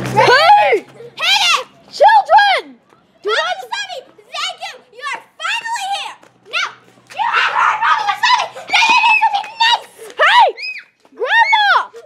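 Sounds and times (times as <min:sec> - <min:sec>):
girls shouting and screaming: 0:00.1 - 0:12.0.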